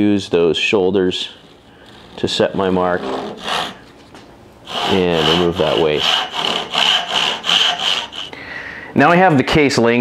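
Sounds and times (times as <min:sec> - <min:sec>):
saw cutting wood: 0:01.3 - 0:03.8, 0:04.7 - 0:08.3.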